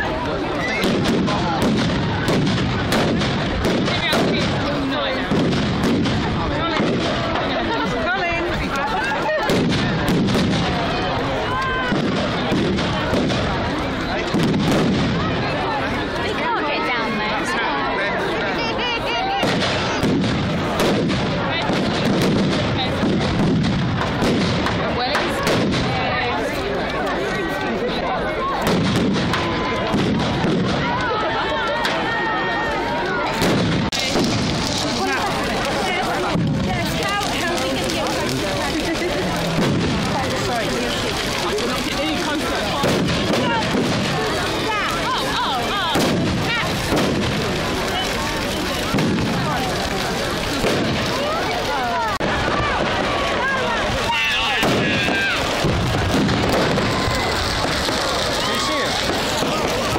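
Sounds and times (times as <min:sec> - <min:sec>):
firework bangs: 0:00.0 - 0:16.6, 0:18.6 - 0:59.9
bonfire crackling and popping: 0:00.0 - 0:59.9
crowd voices: 0:00.0 - 0:59.9.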